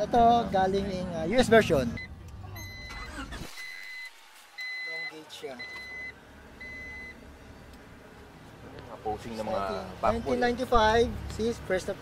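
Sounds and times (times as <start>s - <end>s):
dashboard warning chime beeping: 1.8s - 7.2s.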